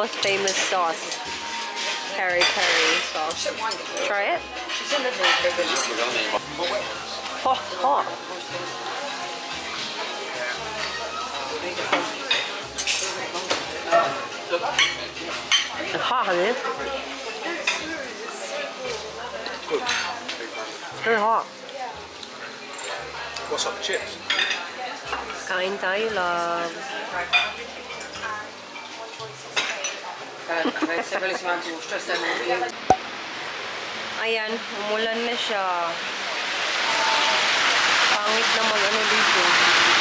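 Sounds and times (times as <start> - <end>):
cutlery clinking and scraping on plate: 0.0 - 20.8, 22.2 - 25.5, 27.2 - 30.2.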